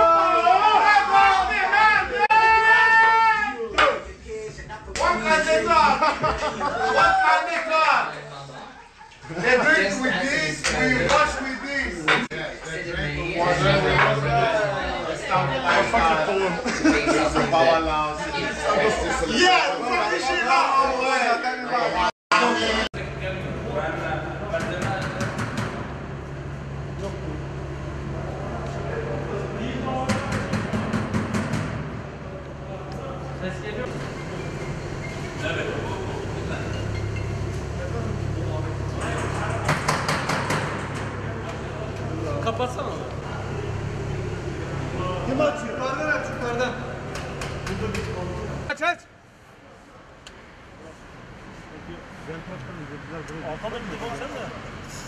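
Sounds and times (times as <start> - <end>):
men talking indistinctly: 0.0 - 25.9, 27.0 - 30.7, 32.2 - 34.6, 35.3 - 49.9, 51.6 - 54.8
steady background noise: 0.0 - 55.0
low mechanical hum: 23.0 - 48.7
rapid knocking on a door: 30.1 - 31.9, 39.6 - 40.9.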